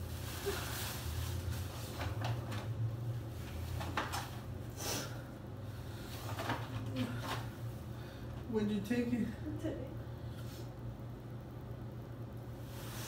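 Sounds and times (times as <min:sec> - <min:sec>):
tissue paper and gift bag rustling: 0:00.0 - 0:02.6
paper crackling: 0:00.0 - 0:02.8.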